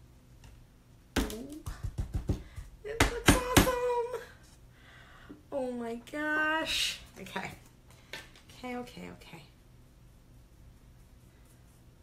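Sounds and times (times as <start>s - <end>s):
person humming: 1.2s - 2.0s.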